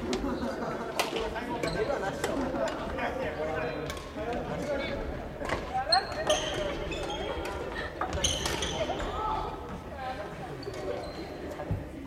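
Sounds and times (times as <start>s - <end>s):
voices in echoing hall: 0.0s - 12.0s.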